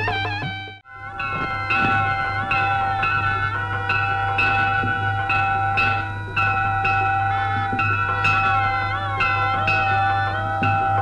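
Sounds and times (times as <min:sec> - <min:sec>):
bell-like struck tones: 0:00.9 - 0:11.0.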